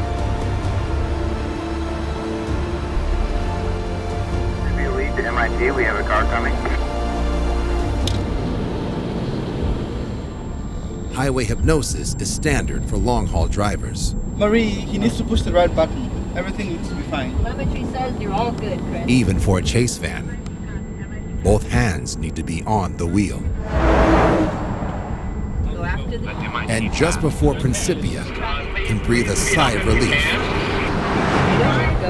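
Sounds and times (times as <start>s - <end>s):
road and engine rumble: 0.0s - 32.0s
vehicle rushing past: 23.4s - 27.2s, 30.4s - 32.0s.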